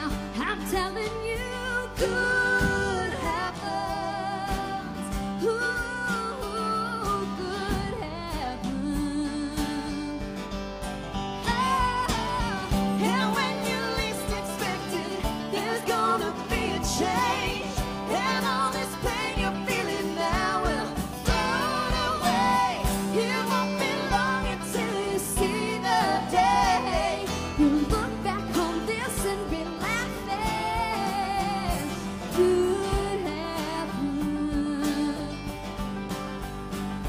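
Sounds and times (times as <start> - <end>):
woman singing: 0.0 - 10.4, 11.4 - 35.7
drum kit: 0.0 - 37.0
guitar playing: 0.0 - 37.0
strummed mandolin: 0.0 - 37.0.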